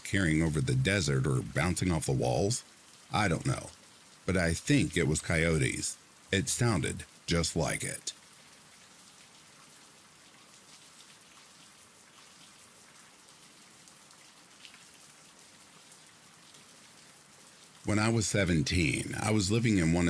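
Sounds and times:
faint steady rain: 0:00.0 - 0:20.0.

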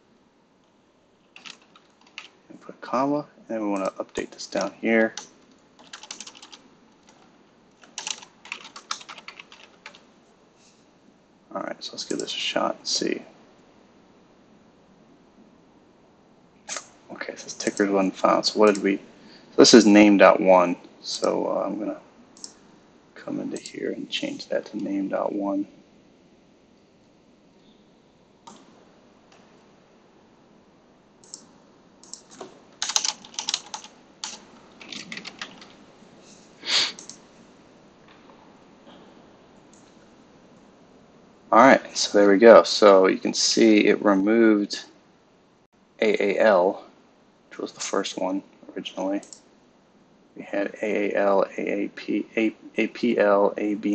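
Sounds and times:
computer keyboard typing: 0:01.3 - 0:02.4, 0:03.8 - 0:07.2, 0:07.8 - 0:10.0, 0:18.6 - 0:18.9, 0:28.4 - 0:28.7, 0:31.2 - 0:35.8, 0:36.9 - 0:37.2.

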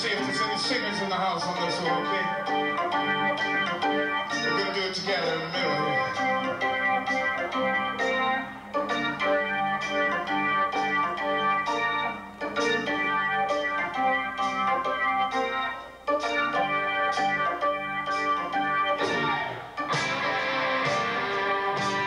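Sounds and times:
organ playing slow blues: 0:00.0 - 0:22.0.

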